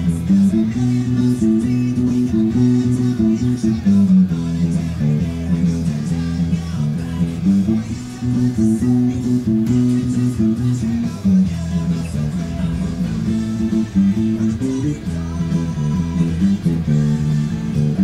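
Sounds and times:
electric bass guitar line: 0:00.0 - 0:18.0
rock band with drums and guitar: 0:00.0 - 0:18.0.

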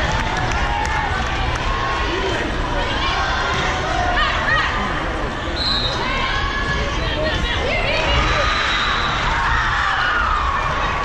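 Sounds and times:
spectators talking and shouting: 0:00.0 - 0:11.0.

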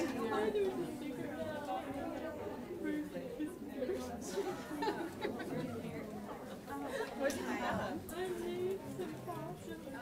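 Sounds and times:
many people talking: 0:00.0 - 0:10.0.

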